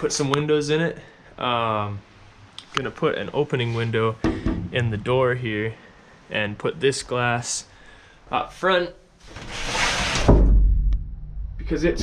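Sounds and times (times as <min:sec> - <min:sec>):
low rumble: 0:10.3 - 0:12.0.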